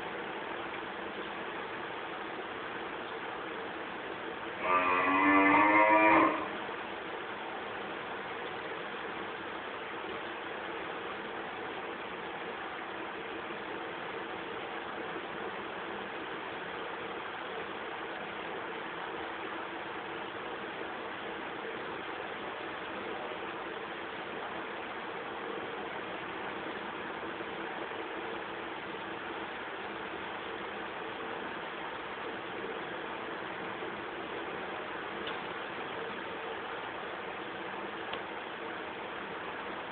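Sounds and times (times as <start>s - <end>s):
steady hiss: 0.0s - 39.9s.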